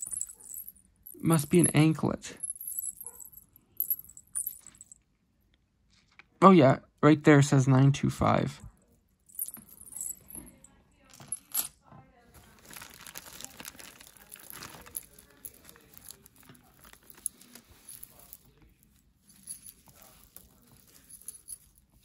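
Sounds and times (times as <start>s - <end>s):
jewelry clinking and rattling: 0.0s - 5.0s, 8.7s - 22.0s.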